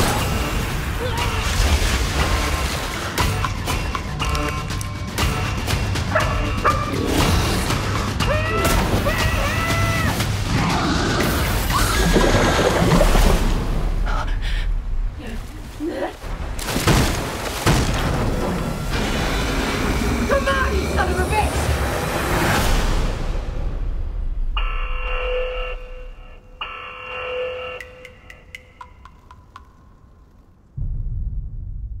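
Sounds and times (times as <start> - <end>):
low rumble: 30.7 - 32.0
booming hits: 30.8 - 32.0.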